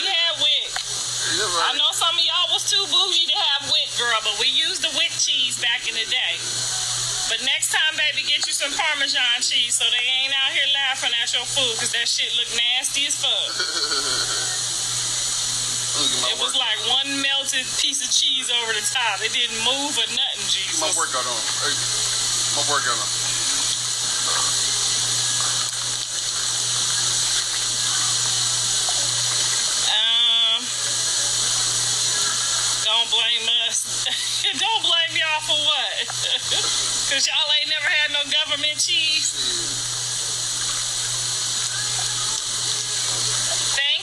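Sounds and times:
woman speaking: 0:00.0 - 0:00.7, 0:01.4 - 0:06.5, 0:07.3 - 0:13.5, 0:16.3 - 0:20.9, 0:29.8 - 0:30.8, 0:32.8 - 0:39.4, 0:43.6 - 0:44.0
running water hiss: 0:00.0 - 0:44.0
short wavering vocal sound: 0:13.5 - 0:14.6.

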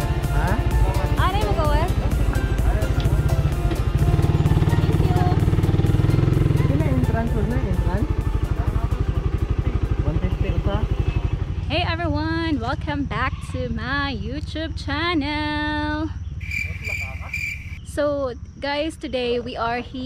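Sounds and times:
motorcycle engine running: 0:00.0 - 0:17.7.

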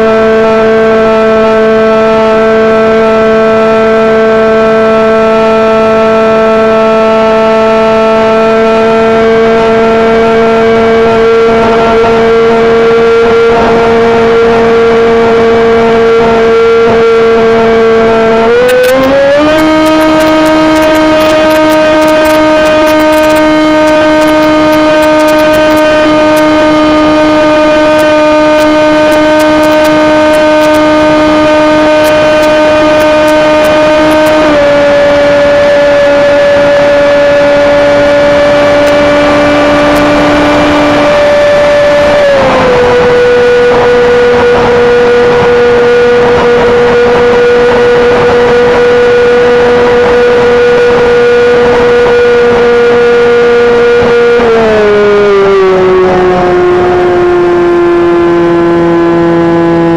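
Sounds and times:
model airplane motor and propeller: 0:00.0 - 0:59.9.

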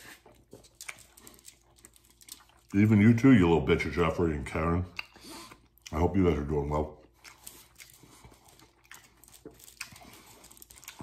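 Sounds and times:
person chewing: 0:00.0 - 0:03.2, 0:04.8 - 0:11.0.

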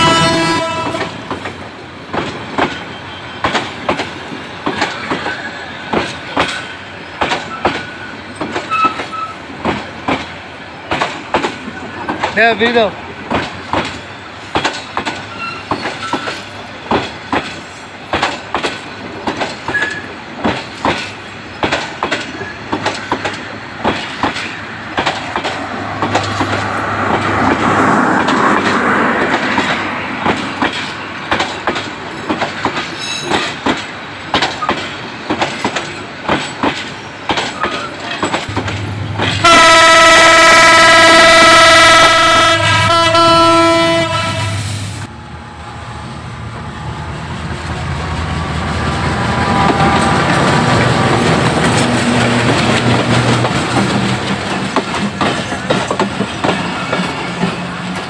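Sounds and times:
locomotive horn: 0:00.0 - 0:01.2, 0:39.2 - 0:45.6
train wheels clacking over rail joints: 0:00.0 - 0:44.1, 0:47.8 - 0:58.0
train rumbling: 0:00.0 - 0:58.0.

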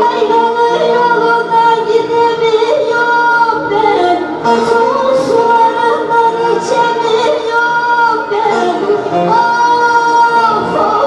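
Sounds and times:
live band with saz and keyboard: 0:00.0 - 0:11.0
woman singing through microphone: 0:00.0 - 0:11.0.

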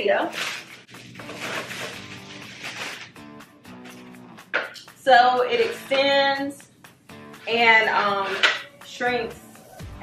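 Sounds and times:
plastic wrap crinkling: 0:00.0 - 0:03.2
soft background music: 0:00.0 - 0:10.0.

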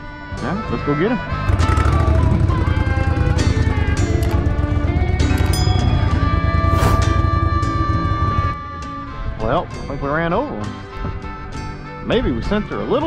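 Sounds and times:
background music: 0:00.0 - 0:13.0
boat motor droning: 0:01.5 - 0:08.6.

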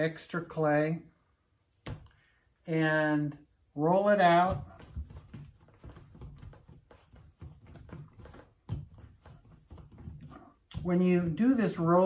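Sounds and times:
clay rubbing on worktable: 0:04.2 - 0:12.0.

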